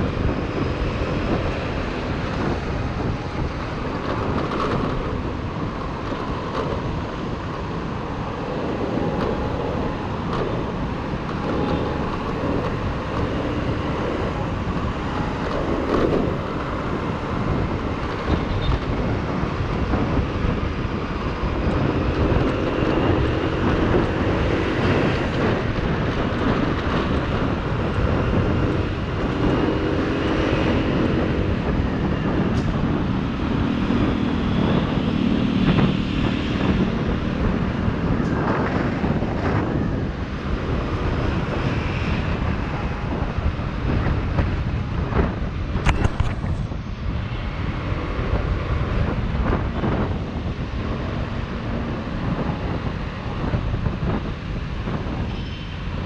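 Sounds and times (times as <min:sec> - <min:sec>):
wind and road noise: 0:00.0 - 0:56.0.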